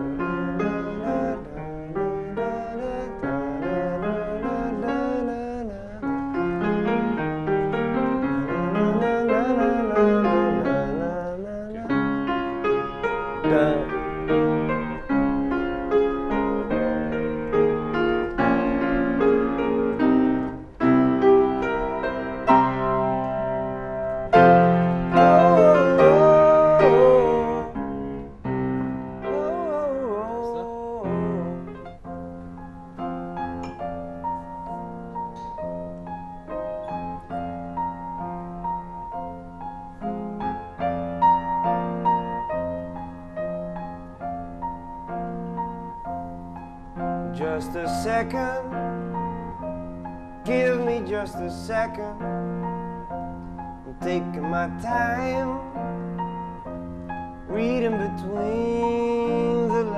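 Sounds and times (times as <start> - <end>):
grand piano chords: 0.0 - 59.9
person singing wavering: 25.2 - 27.8.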